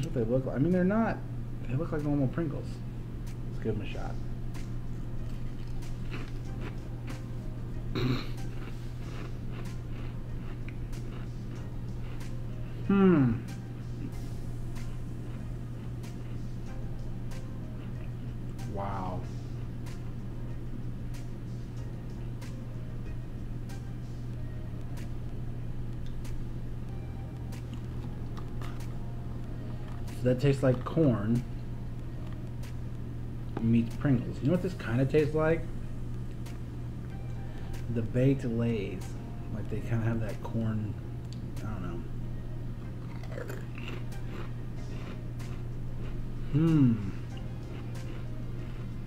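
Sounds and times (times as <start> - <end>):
steady low hum: 0.0 - 49.0
person chewing crisps: 5.1 - 7.2, 8.2 - 13.4, 27.5 - 31.0, 43.0 - 49.0
crisps crunching: 5.2 - 6.8, 43.0 - 45.2.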